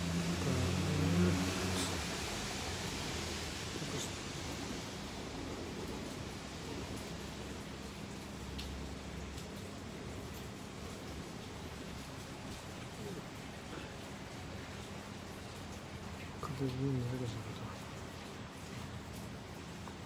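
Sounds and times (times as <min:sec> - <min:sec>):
low voice: 0:00.0 - 0:02.1, 0:12.9 - 0:14.0, 0:16.4 - 0:18.0
steady background noise: 0:00.0 - 0:20.0.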